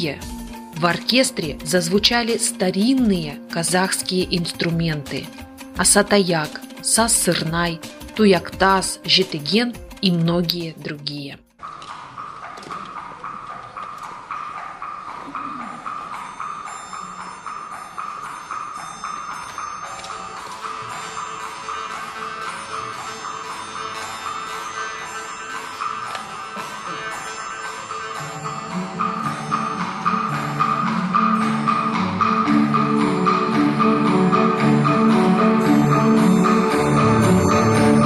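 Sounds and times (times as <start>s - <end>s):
folk instrument orchestra playing: 19.9s - 38.0s.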